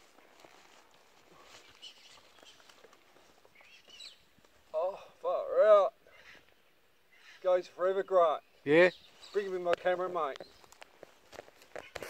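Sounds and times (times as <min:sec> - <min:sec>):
small rustles and clicks: 0:00.0 - 0:04.6, 0:09.3 - 0:12.0.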